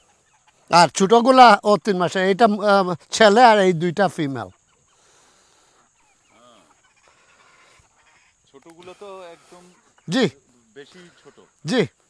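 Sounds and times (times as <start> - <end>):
faint farm animal call: 0.0 - 1.5, 4.2 - 12.0.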